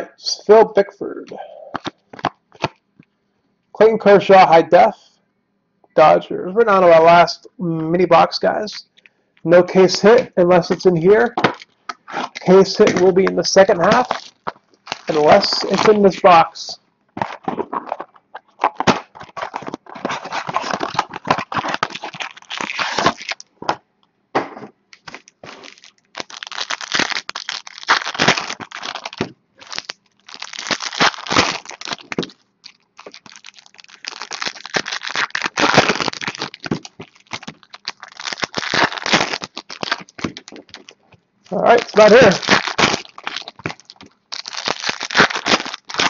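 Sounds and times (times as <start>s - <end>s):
foil wrappers crinkling and tearing: 1.7s - 2.8s, 11.5s - 16.4s, 17.2s - 23.5s, 25.0s - 46.0s.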